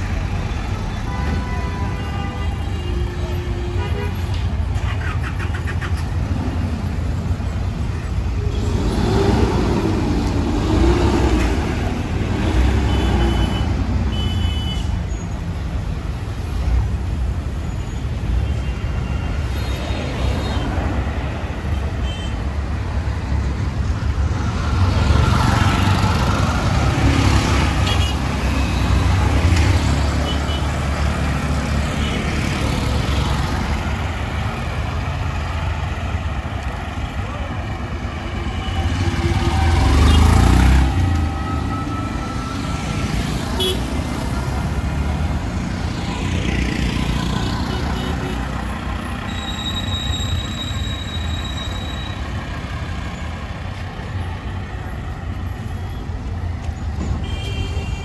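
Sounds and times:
vehicles passing close by: 0.0 - 58.0.

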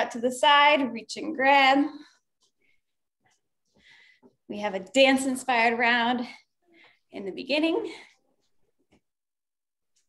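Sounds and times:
faint breath: 3.7 - 4.4.

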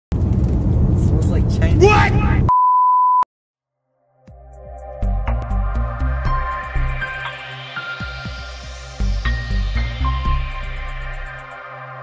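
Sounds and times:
man talking: 1.0 - 2.5
electronic censor bleep: 2.5 - 3.3.

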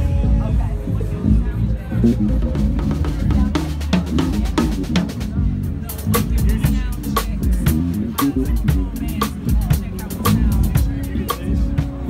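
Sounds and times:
low bass guitar notes: 0.0 - 12.0
drum kit playing a groove: 0.3 - 12.0.

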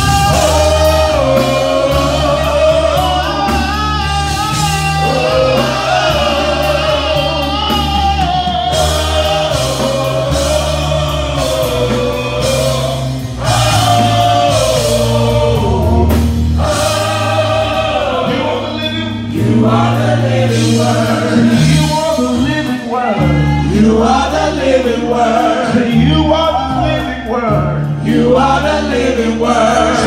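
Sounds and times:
band with steady bass line: 0.0 - 30.0
gospel group singing: 0.0 - 30.0.

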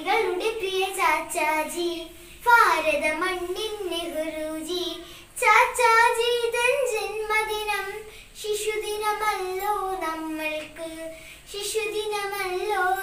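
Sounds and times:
child singing: 0.0 - 13.0
child breathing: 2.1 - 2.5, 5.0 - 5.4, 8.0 - 8.4, 11.1 - 11.5.

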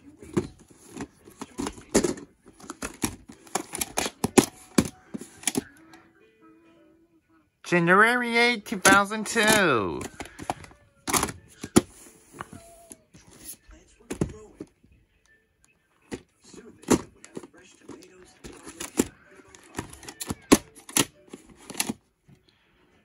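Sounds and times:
plastic cassette case clicks and knocks: 0.3 - 5.7, 8.8 - 11.9, 16.8 - 22.0.

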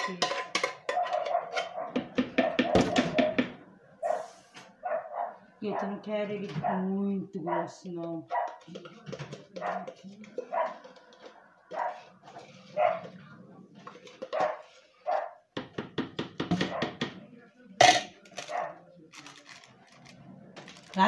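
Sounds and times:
dog barking: 0.8 - 3.3, 4.0 - 6.0, 7.5 - 8.7, 9.6 - 13.1, 14.3 - 15.4, 16.6 - 17.0, 18.4 - 18.8.

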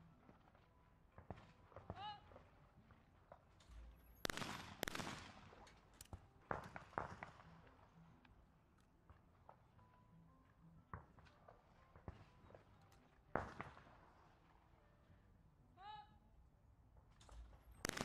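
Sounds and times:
shotgun shots with ringing tail: 4.2 - 5.9, 17.8 - 18.0.

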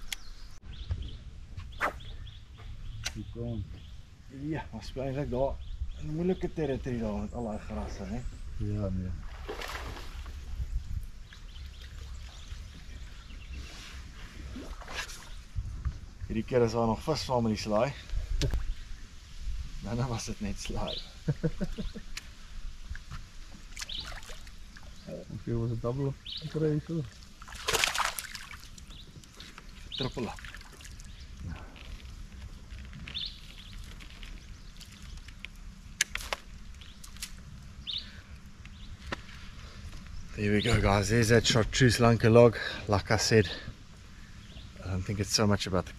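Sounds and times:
bird chirping: 0.0 - 9.0, 23.8 - 27.2, 28.4 - 32.0, 33.0 - 35.4, 36.8 - 42.1, 44.2 - 45.0
wind on microphone: 5.4 - 16.5.

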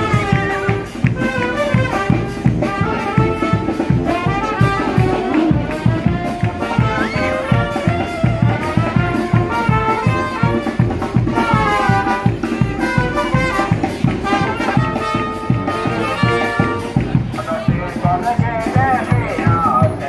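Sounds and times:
marching brass band playing: 0.0 - 20.0.

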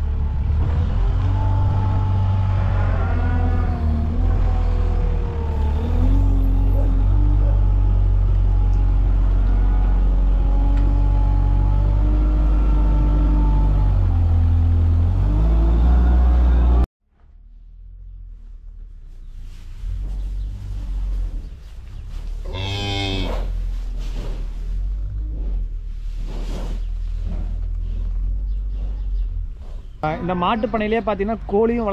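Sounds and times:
diesel engine revving: 0.0 - 16.9.

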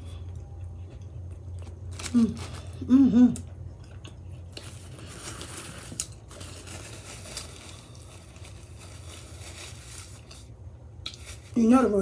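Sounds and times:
quiet chewing: 3.3 - 6.1
paper crinkling: 4.5 - 10.5.

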